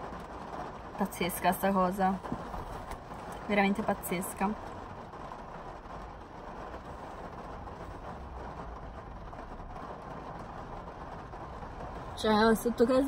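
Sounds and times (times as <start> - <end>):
heavy rain on car roof: 0.0 - 13.0.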